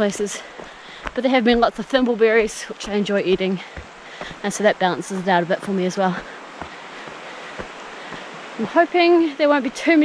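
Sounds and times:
footsteps on dirt trail: 0:00.0 - 0:10.0
steady rushing hiss: 0:00.0 - 0:10.0.

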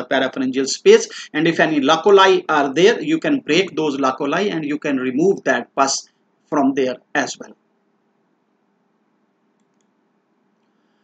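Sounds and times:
faint clicks: 0:09.5 - 0:10.0.

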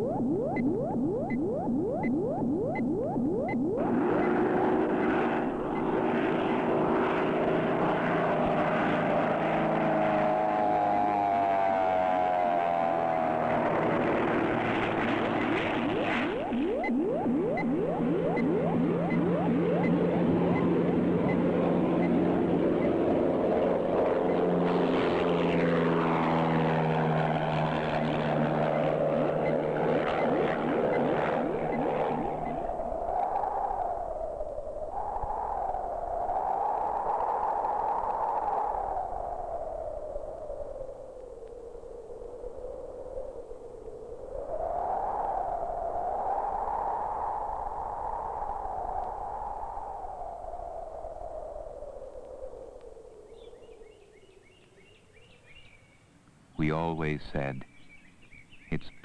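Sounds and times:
propeller plane engine passing: 0:00.0 - 0:34.9
wavering tone: 0:00.0 - 0:40.9.

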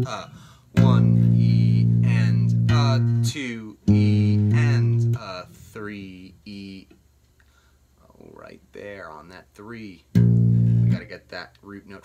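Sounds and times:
electric bass guitar riff: 0:00.0 - 0:05.9, 0:10.1 - 0:11.1.

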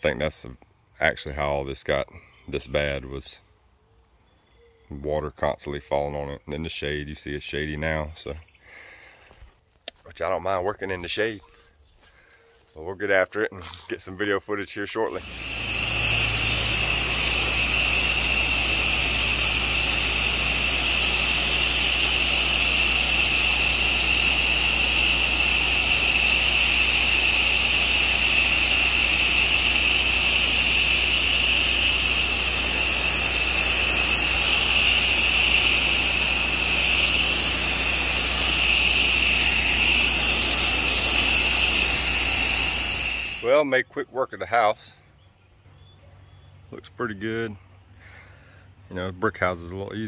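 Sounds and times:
pressure washer water jet hissing: 0:15.0 - 0:43.6
pressure washer engine hum: 0:15.1 - 0:43.5.

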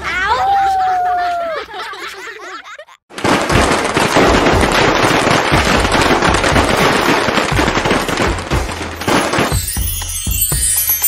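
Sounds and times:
firecrackers crackling: 0:03.1 - 0:11.0.

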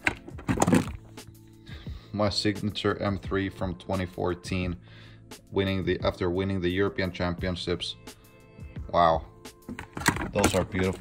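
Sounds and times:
plastic discs knocking and scraping: 0:00.0 - 0:01.1, 0:09.6 - 0:11.0.

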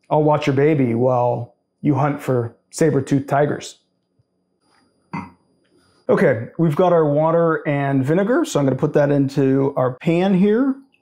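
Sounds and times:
man's throaty sound: 0:05.2 - 0:05.4, 0:06.1 - 0:06.6.

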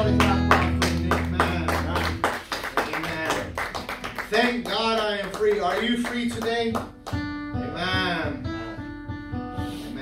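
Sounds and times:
acoustic guitar strumming: 0:00.0 - 0:02.5, 0:03.6 - 0:10.0.

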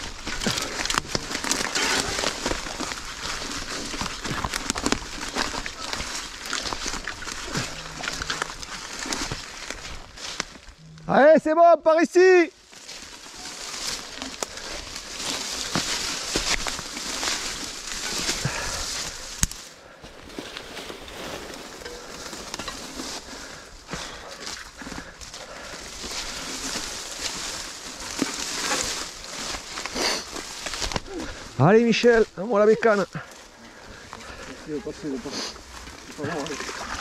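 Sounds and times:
brush scraping along bike: 0:00.0 - 0:10.8, 0:12.6 - 0:37.0
tyres rolling over leaves and twigs: 0:00.0 - 0:11.4, 0:12.0 - 0:37.0.

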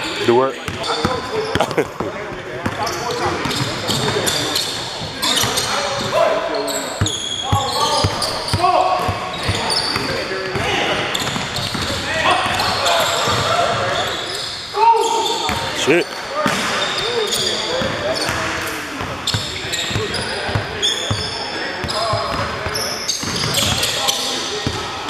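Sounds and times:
sneaker squeaks: 0:00.6 - 0:16.0, 0:16.6 - 0:24.8.

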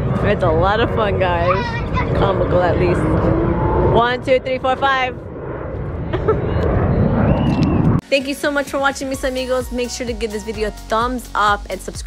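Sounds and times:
steady low rumble: 0:00.0 - 0:11.7.

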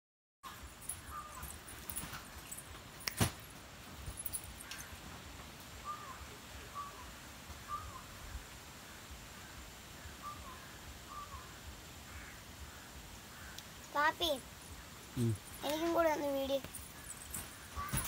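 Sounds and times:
bird calling: 0:00.5 - 0:02.6, 0:05.8 - 0:13.8, 0:14.6 - 0:18.0.

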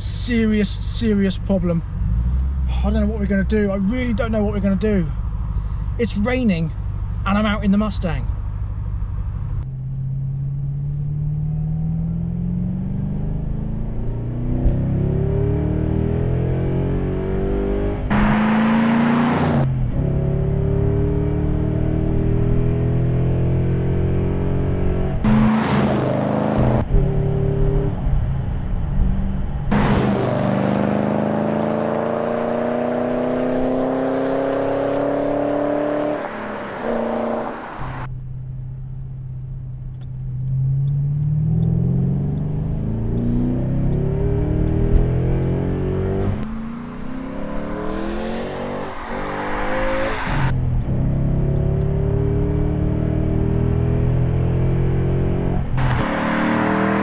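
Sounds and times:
car engine accelerating: 0:00.0 - 0:57.0.

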